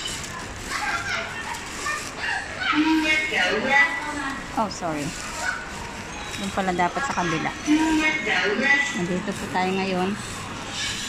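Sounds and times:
chatter of passers-by: 0.0s - 11.0s
children's voices: 0.1s - 4.5s.

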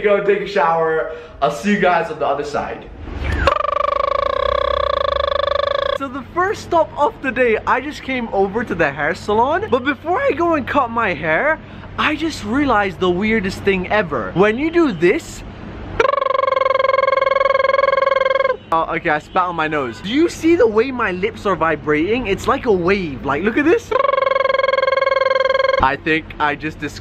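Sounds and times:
man buzzing his lips: 3.3s - 6.0s, 16.0s - 18.7s, 23.9s - 25.9s.

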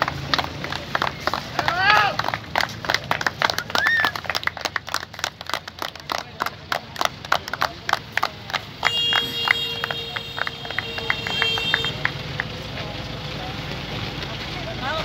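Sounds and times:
sharp claps or clicks: 0.0s - 12.8s.

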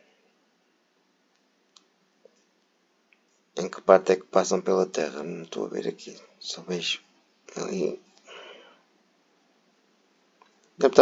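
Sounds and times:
man's voice: 3.6s - 8.0s, 10.8s - 11.0s.

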